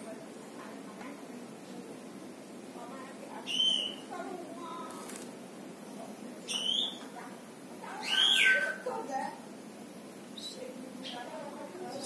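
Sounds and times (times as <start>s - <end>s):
bird sharp calls: 3.4s - 4.1s, 6.5s - 7.0s, 8.0s - 8.9s
faint bird chirps: 3.4s - 4.2s, 5.9s - 7.2s, 7.9s - 8.9s, 10.3s - 12.0s.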